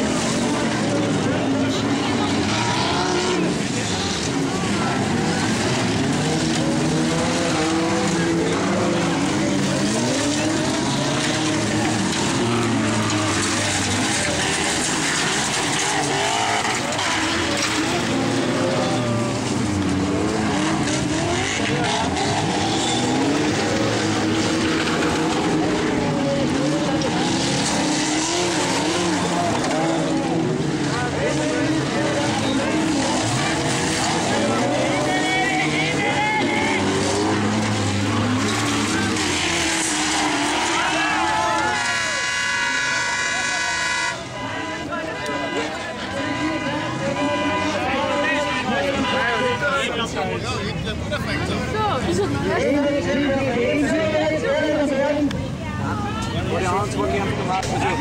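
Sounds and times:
stock car engines racing: 0:00.0 - 0:58.0.

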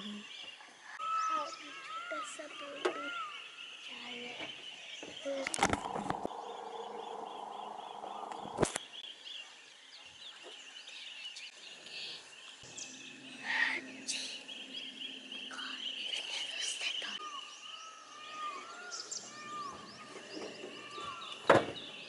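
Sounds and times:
birds chirping and calling: 0:00.0 - 0:22.0
high bird trill: 0:00.9 - 0:09.6, 0:12.6 - 0:22.0
low bird call: 0:01.0 - 0:09.4, 0:12.7 - 0:22.0.

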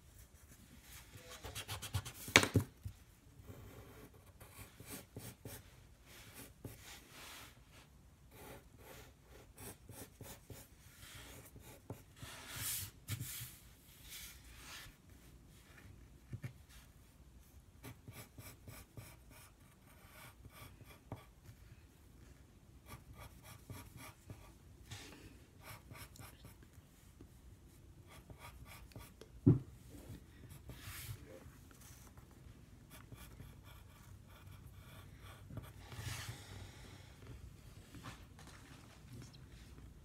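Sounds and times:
pencil scratching on paper: 0:00.4 - 0:02.2, 0:03.4 - 0:05.7, 0:08.3 - 0:13.6, 0:17.8 - 0:21.6, 0:22.8 - 0:24.5, 0:25.6 - 0:26.6, 0:28.1 - 0:29.2, 0:32.9 - 0:36.3.

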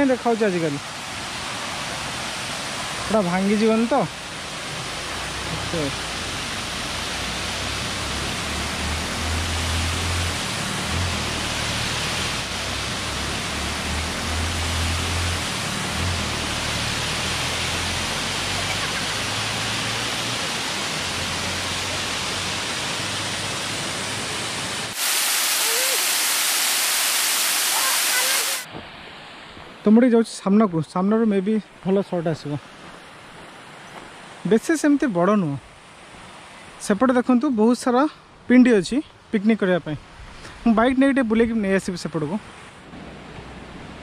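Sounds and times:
water rushing into spillway: 0:00.0 - 0:28.8.

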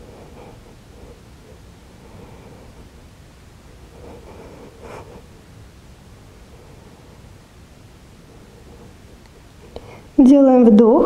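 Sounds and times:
soft breath: 0:00.0 - 0:10.2
faint hum: 0:00.0 - 0:11.0.

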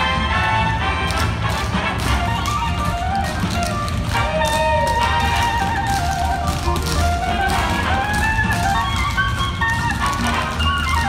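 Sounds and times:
music: 0:00.0 - 0:11.0
tap shoes on wooden floor: 0:01.0 - 0:11.0.

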